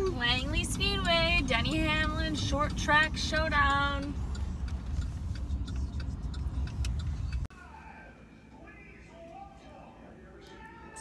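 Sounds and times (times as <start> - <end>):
car cabin road noise: 0.0 - 7.5
light ticks: 0.0 - 7.5.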